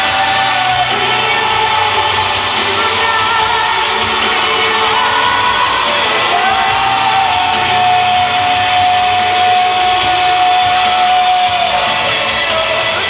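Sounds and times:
fans shouting and cheering: 0:00.0 - 0:13.0
live pop music through pa: 0:00.0 - 0:13.0.

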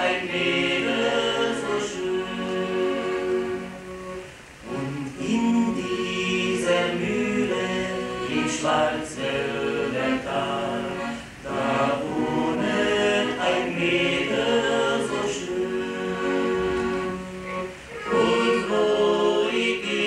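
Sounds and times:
male vocal quartet singing: 0:00.0 - 0:20.0
piano accordion: 0:00.0 - 0:20.0.

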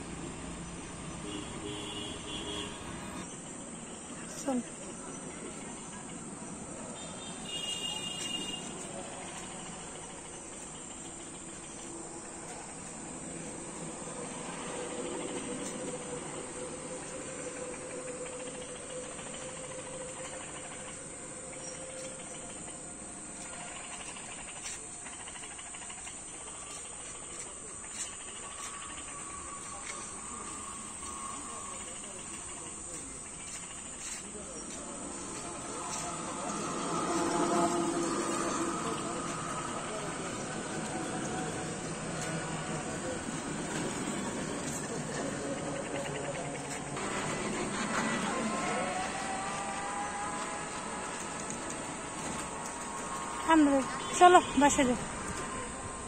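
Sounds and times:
crickets chirring: 0:00.0 - 0:56.0
faint voices: 0:03.7 - 0:56.0.

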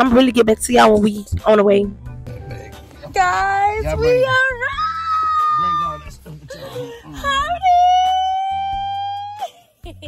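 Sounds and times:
person shouting: 0:03.8 - 0:06.1.

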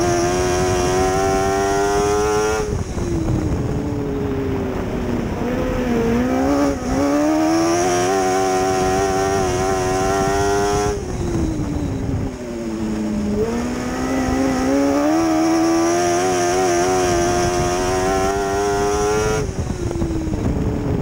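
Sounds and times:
race car engine revving: 0:00.0 - 0:20.7.

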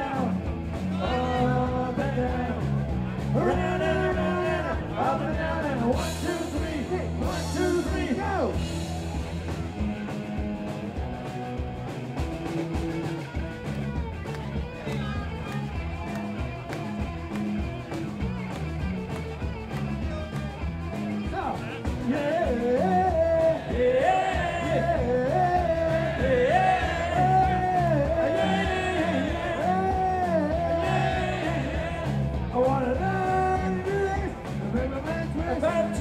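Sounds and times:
person singing lead vocal: 0:00.0 - 0:08.5, 0:22.0 - 0:36.0
bass guitar: 0:00.0 - 0:36.0
electric guitar: 0:00.0 - 0:36.0
steady drum beat: 0:00.0 - 0:36.0.

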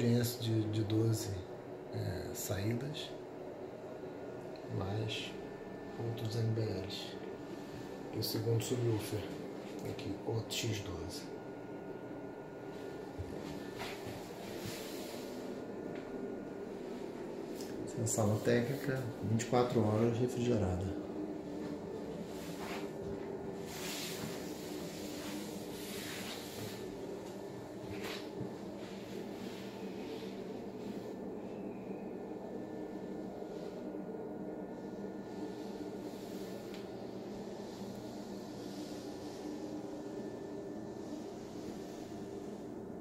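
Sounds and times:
air-conditioning hum: 0:00.0 - 0:43.0.

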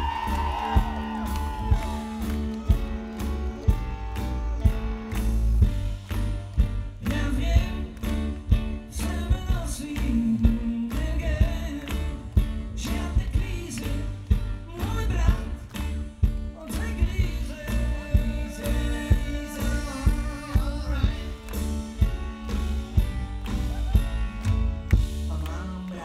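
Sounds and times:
drums with steady beat: 0:00.0 - 0:25.7
electric bass: 0:00.0 - 0:26.0
keyboard playing: 0:00.0 - 0:26.0
man singing into microphone: 0:07.0 - 0:08.2, 0:08.9 - 0:15.9, 0:16.5 - 0:21.6, 0:25.3 - 0:26.0.

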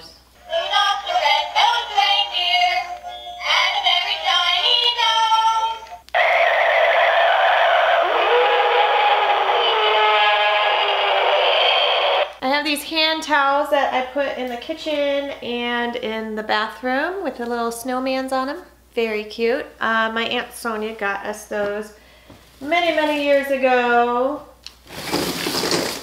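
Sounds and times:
plush toy singing electronic song: 0:00.4 - 0:06.0
noisy electronic toy song: 0:00.4 - 0:12.3.

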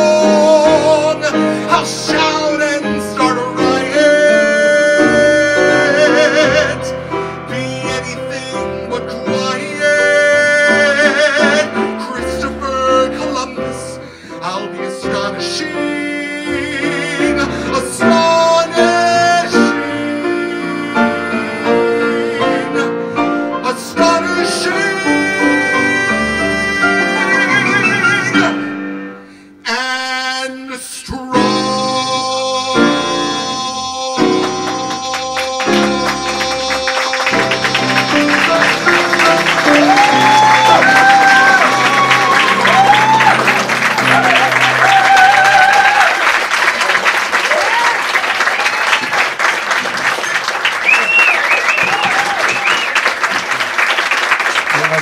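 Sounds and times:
man singing with vibrato: 0:00.0 - 0:45.9
piano: 0:00.0 - 0:55.0.

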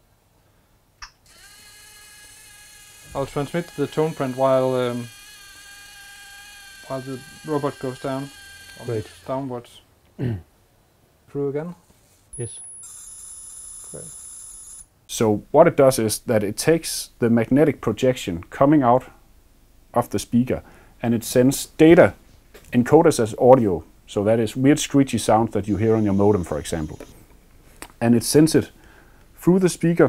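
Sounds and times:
small electric motor whirring: 0:01.2 - 0:09.8, 0:12.5 - 0:14.9, 0:25.7 - 0:27.2
high-pitched electronic tone: 0:25.7 - 0:27.2.

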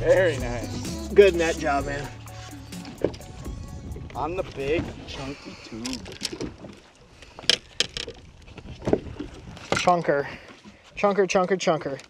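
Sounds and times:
fishing gear clicking and knocking: 0:05.7 - 0:12.0.

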